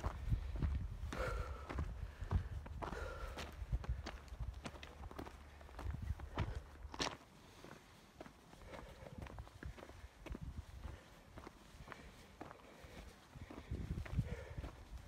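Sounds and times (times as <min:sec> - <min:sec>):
footsteps crunching on gravel: 0:00.0 - 0:15.0.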